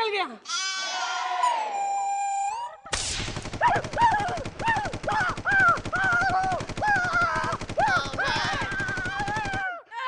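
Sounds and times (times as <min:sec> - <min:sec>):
people wailing in fright: 0:03.6 - 0:10.0.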